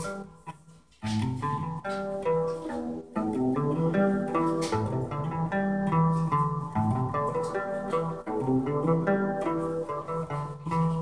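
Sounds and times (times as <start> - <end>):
electric guitar notes and chords: 0.0 - 11.0.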